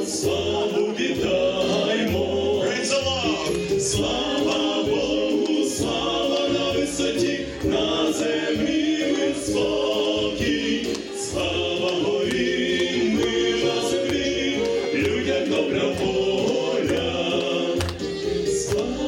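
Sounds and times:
vocal ensemble singing in harmony: 0:00.0 - 0:19.0.

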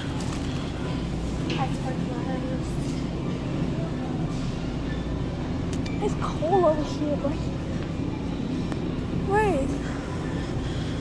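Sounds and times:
faint voices: 0:00.0 - 0:11.0
refrigerated display case humming: 0:00.0 - 0:11.0.

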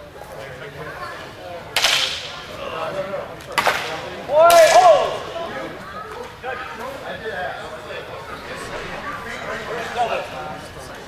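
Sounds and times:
crowd chatter in a hall: 0:00.0 - 0:11.0
sharp cracks: 0:01.8 - 0:02.5, 0:03.5 - 0:05.4.

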